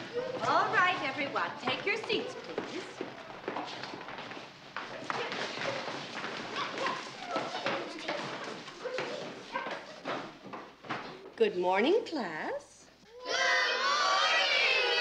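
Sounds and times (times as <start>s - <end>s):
children chattering: 0.0s - 1.1s, 4.9s - 10.3s
knocks of feet and wooden desks: 0.0s - 11.4s.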